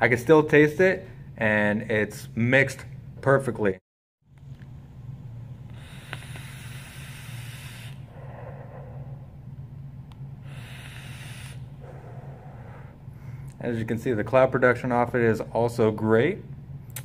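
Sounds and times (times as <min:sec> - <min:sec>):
low steady hum: 0:00.0 - 0:17.0
hissing vape draw: 0:05.7 - 0:08.1, 0:10.4 - 0:11.7
breathy exhaling: 0:05.7 - 0:09.6, 0:10.2 - 0:13.6.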